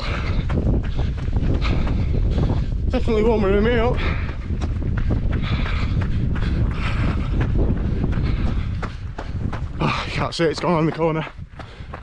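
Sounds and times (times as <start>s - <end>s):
running footsteps on gravel: 0.0s - 12.0s
wind buffeting microphone: 0.0s - 12.0s.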